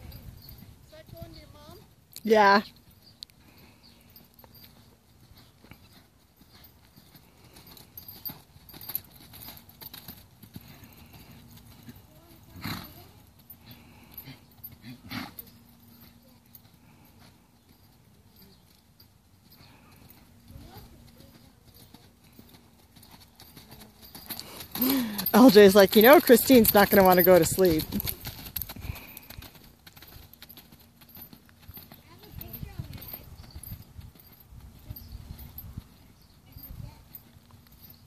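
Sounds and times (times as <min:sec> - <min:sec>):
muffled hoofbeats on sand: 0:04.2 - 0:18.8, 0:19.4 - 0:38.0.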